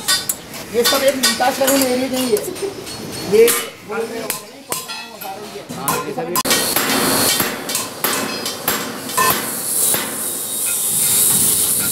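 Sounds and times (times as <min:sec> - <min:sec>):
hammer striking sheet metal: 0:00.0 - 0:11.9.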